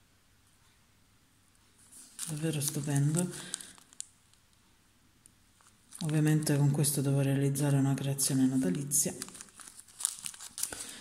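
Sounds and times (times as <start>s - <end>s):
plastic bag crinkling: 1.8s - 4.5s, 5.6s - 11.0s.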